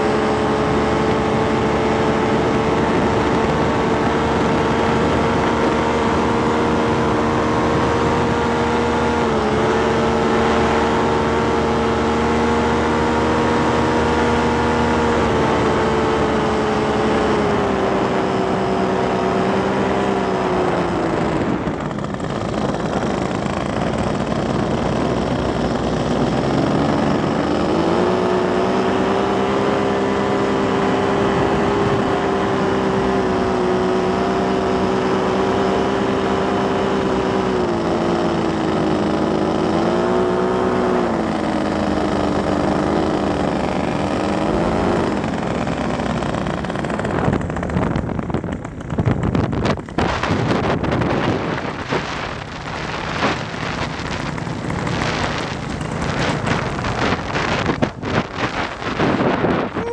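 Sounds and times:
paramotor engine and propeller: 0:00.0 - 0:59.9.

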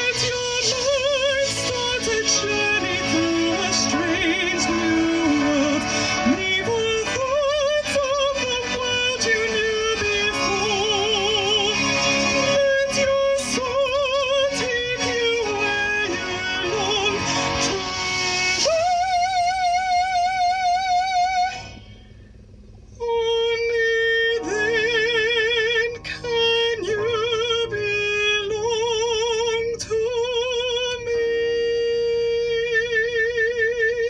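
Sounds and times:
slow melody with wide vibrato: 0:00.0 - 0:22.3, 0:23.0 - 0:33.8.

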